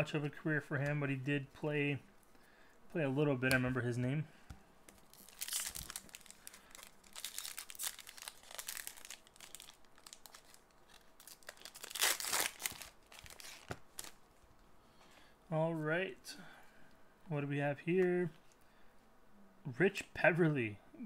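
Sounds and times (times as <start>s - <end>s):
wrapper crinkling and tearing: 4.9s - 14.2s.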